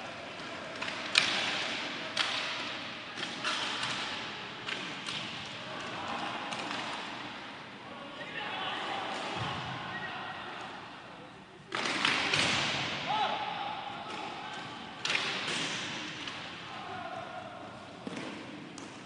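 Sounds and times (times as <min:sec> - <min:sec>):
hockey sticks knocking puck: 0:00.4 - 0:02.6, 0:11.7 - 0:12.8, 0:18.0 - 0:19.0.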